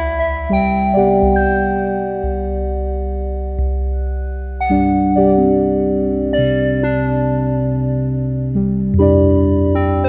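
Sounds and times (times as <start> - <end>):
soft piano chords: 0.0 - 10.0.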